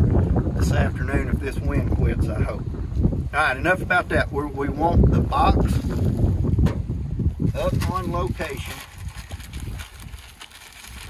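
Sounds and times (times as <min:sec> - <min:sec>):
wind buffeting microphone: 0:00.0 - 0:11.0
plastic bag crinkling: 0:07.7 - 0:11.0.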